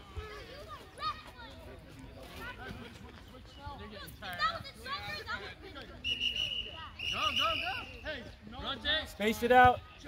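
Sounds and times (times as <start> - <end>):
spectators chatting and calling: 0.0 - 10.0.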